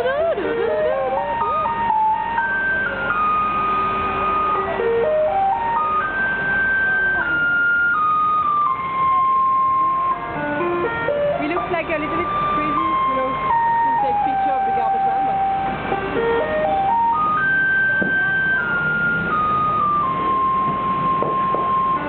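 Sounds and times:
garbage truck loudspeaker melody: 0.0s - 22.0s.

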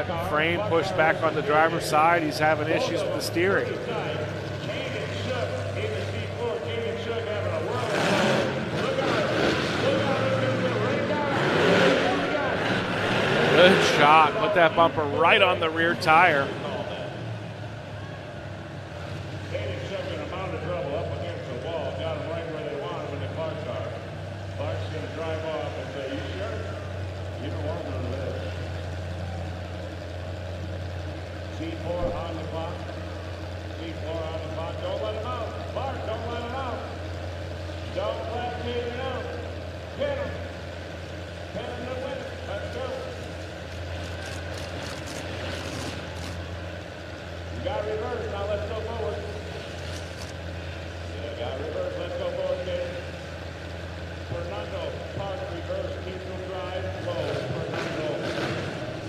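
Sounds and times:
car engines idling: 0.0s - 59.0s
voices: 0.0s - 59.0s.

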